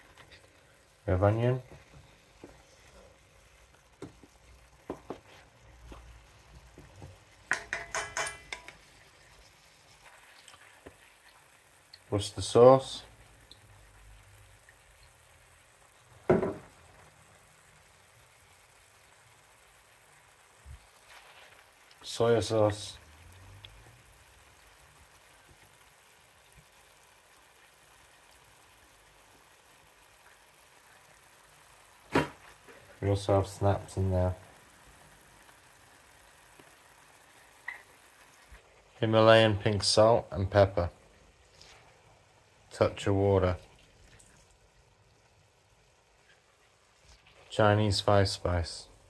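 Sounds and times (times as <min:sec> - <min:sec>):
food sizzling in a pan: 0:00.0 - 0:49.0.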